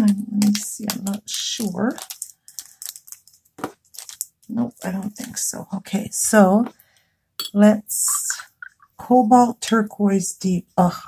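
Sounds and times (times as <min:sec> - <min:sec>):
faint plastic clicks and rustles: 0:00.0 - 0:05.5.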